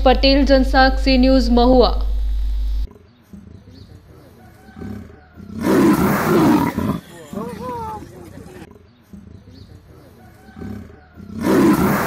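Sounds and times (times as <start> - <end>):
leopard snarling: 4.2 - 8.7, 9.9 - 12.0
narrator speaking: 6.9 - 8.7
person's voice: 7.0 - 8.7.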